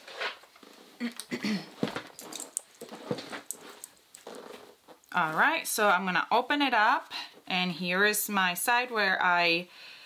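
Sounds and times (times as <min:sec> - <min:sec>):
fabric rustling: 0:01.8 - 0:06.0.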